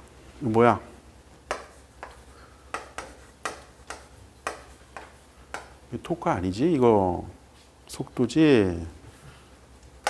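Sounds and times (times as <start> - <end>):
chalk tapping on chalkboard: 1.4 - 5.8.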